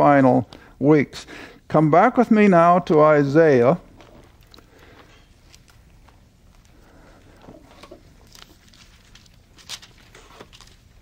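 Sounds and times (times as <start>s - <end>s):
low room hum: 0.0s - 11.0s
thin pages being leafed through: 7.7s - 11.0s.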